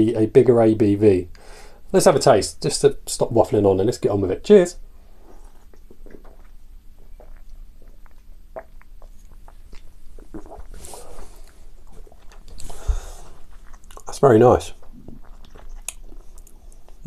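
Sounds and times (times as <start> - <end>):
sipping and swallowing: 5.2 - 17.0.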